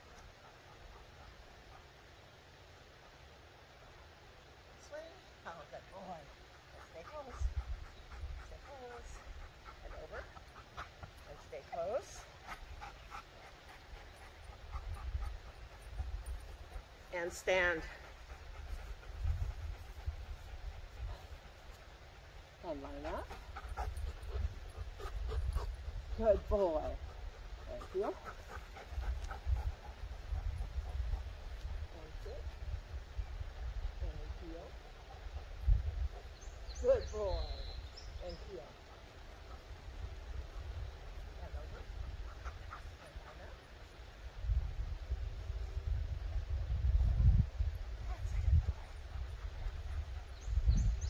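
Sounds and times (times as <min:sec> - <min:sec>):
dog panting: 0:00.0 - 0:02.2, 0:05.7 - 0:32.5, 0:38.4 - 0:44.0, 0:48.1 - 0:51.0
wind rumble on microphone: 0:06.9 - 0:51.0.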